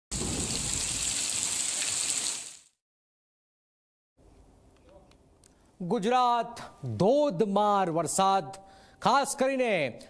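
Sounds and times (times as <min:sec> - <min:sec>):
heavy rain falling: 0:00.1 - 0:02.6.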